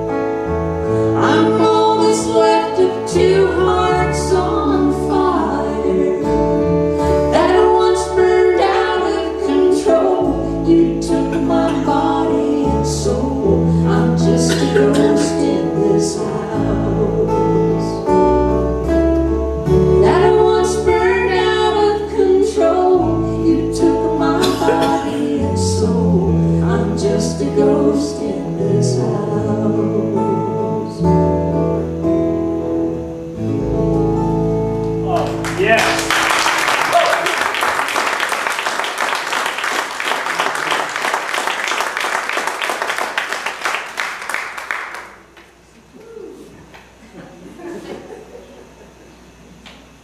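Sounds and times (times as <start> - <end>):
electric bass guitar: 0.0 - 36.4
acoustic guitars playing chords: 0.0 - 45.7
person singing: 1.0 - 18.2, 19.8 - 31.4.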